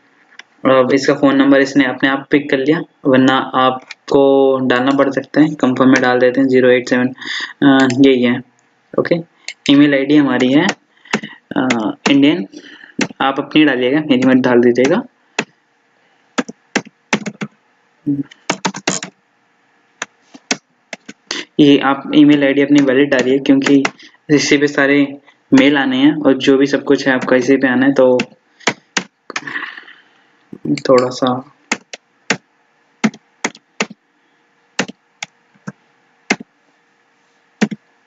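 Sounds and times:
computer keyboard keystrokes: 13.0s - 13.2s, 16.4s - 17.5s, 18.3s - 19.1s, 30.6s - 32.4s, 33.0s - 34.0s.

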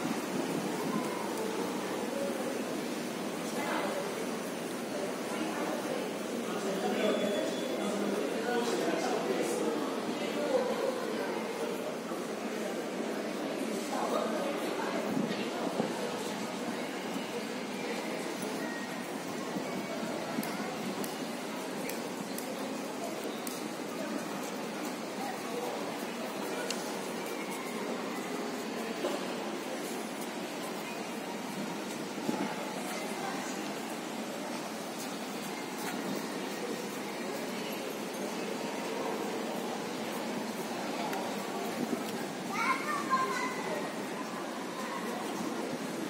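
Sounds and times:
background noise wash: 0.0s - 46.0s
faint distant voices: 0.0s - 46.0s
shopping plaza background hum: 0.0s - 46.0s.

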